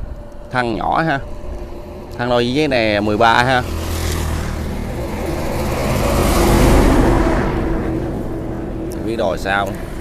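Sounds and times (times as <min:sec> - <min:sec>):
vehicle passing by: 0:01.2 - 0:10.0.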